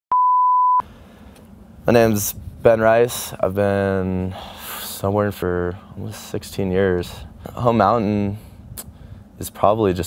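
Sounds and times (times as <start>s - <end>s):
low background hiss: 0.8s - 10.0s.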